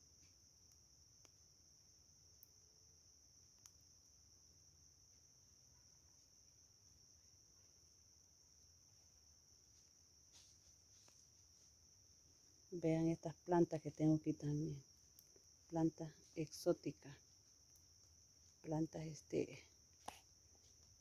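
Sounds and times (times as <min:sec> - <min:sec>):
faint ticks: 0:02.4 - 0:02.6, 0:03.5 - 0:03.8, 0:15.1 - 0:15.5.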